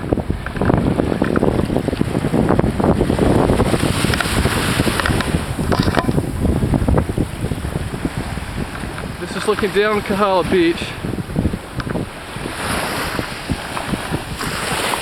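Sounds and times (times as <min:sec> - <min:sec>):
small waves washing: 0:00.0 - 0:15.0
wind buffeting microphone: 0:00.0 - 0:15.0.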